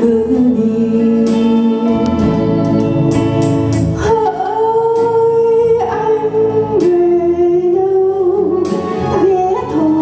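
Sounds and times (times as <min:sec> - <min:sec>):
electric guitar: 0:00.0 - 0:10.0
keyboard: 0:00.0 - 0:10.0.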